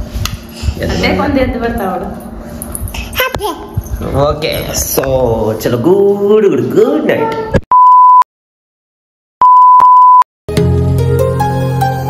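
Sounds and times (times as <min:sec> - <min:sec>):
high electronic beep tone: 0:07.7 - 0:08.2, 0:09.4 - 0:10.3
music: 0:10.5 - 0:12.0.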